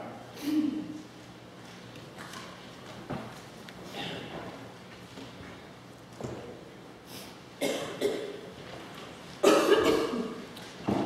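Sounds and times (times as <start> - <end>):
person coughing: 7.6 - 8.4, 9.4 - 10.4.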